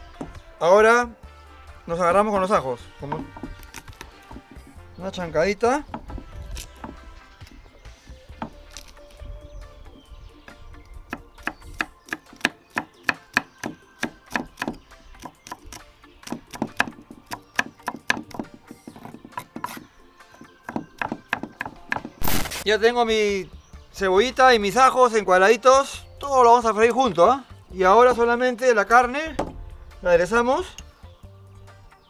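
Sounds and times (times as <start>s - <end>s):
knife chopping on wooden board: 3.0s - 4.8s, 5.8s - 7.6s, 8.3s - 8.9s, 11.1s - 22.3s.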